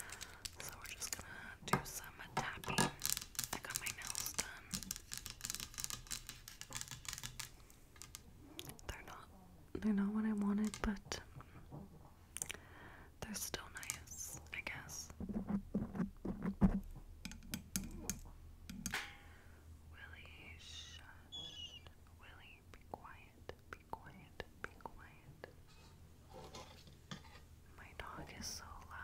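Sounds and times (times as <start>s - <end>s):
soft whispering: 0.0s - 5.0s, 8.4s - 11.9s, 13.1s - 15.5s, 19.9s - 25.8s, 27.7s - 29.0s.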